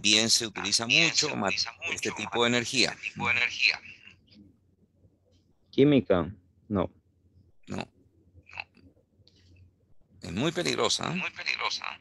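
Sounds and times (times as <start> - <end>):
man speaking over video call: 0.0 - 4.2, 7.6 - 7.9, 10.2 - 12.0.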